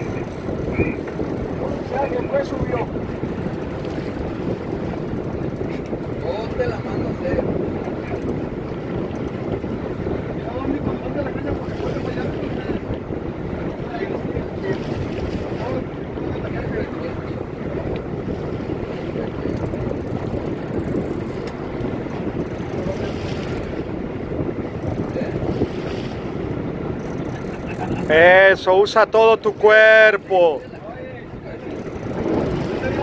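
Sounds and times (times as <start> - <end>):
boat running on sea: 0.0 - 33.0
wind buffeting microphone: 0.0 - 33.0.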